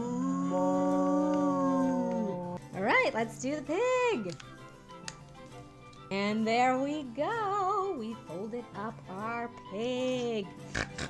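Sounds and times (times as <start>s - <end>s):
person's howl-like vocal note: 0.0s - 2.6s.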